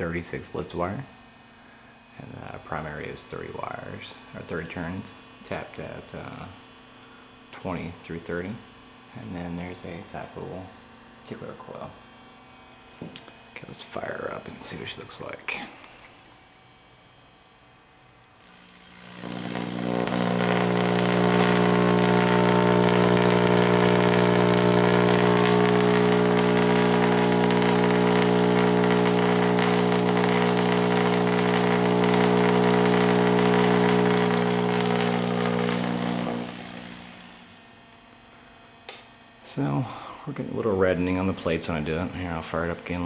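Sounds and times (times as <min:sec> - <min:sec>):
tesla coil arc buzzing: 0:00.0 - 0:15.6, 0:16.2 - 0:39.8.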